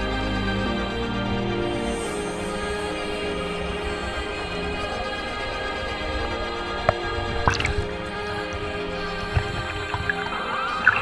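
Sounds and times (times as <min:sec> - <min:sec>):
background music with sustained tones: 0:00.0 - 0:11.0.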